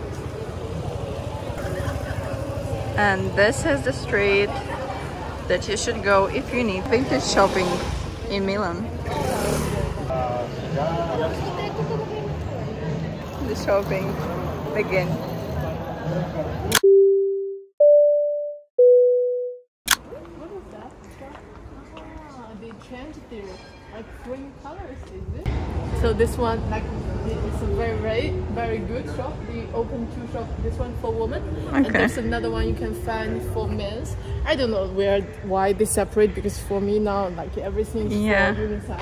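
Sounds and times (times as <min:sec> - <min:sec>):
low traffic rumble: 0:00.0 - 0:16.7
faint voices of passers-by: 0:00.0 - 0:16.8, 0:20.0 - 0:39.0
electronic chime notes: 0:16.8 - 0:19.6.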